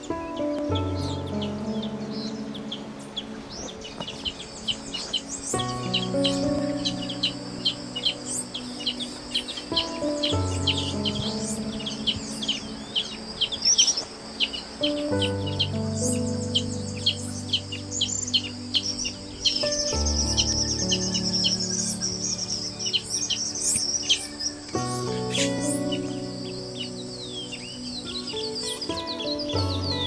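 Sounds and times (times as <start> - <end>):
small birds chirping: 0.0 - 30.0
soft music of held chords: 0.0 - 30.0.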